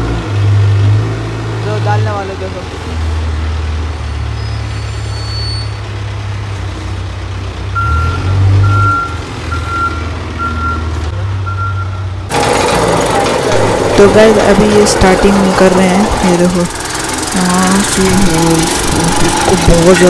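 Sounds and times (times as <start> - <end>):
diesel machinery rumbling: 0.0 - 20.0
reversing alarm beeps: 7.8 - 12.0
loud rattling machine: 12.3 - 20.0.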